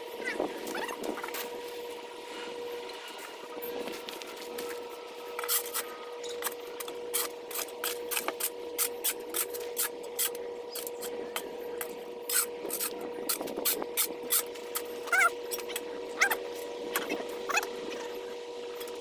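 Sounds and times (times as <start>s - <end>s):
steady hum: 0.0s - 19.0s
rake scraping through dirt: 3.1s - 11.2s.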